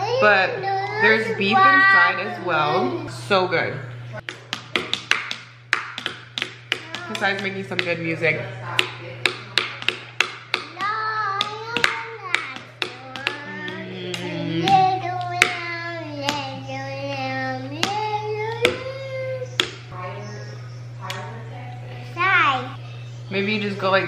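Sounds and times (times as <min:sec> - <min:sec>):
person singing: 0:13.1 - 0:15.1.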